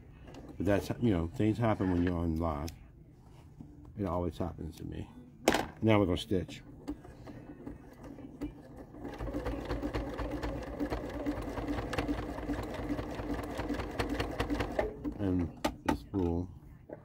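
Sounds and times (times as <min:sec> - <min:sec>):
sewing machine stitching: 0:06.8 - 0:15.4.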